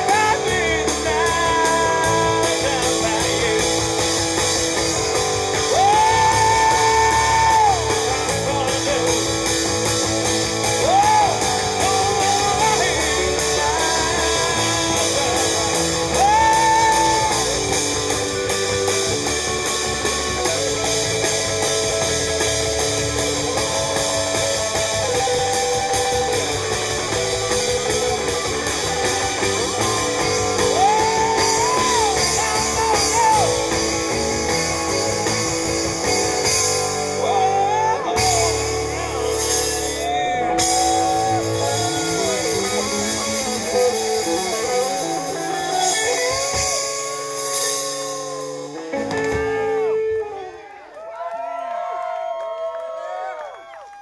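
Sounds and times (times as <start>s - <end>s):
drum kit with cymbals: 0.0s - 50.1s
electric bass: 0.0s - 50.6s
electric guitar lead lines: 0.0s - 50.7s.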